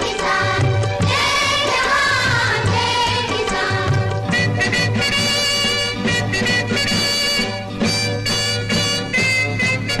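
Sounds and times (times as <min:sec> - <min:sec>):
band accompaniment: 0:00.0 - 0:10.0.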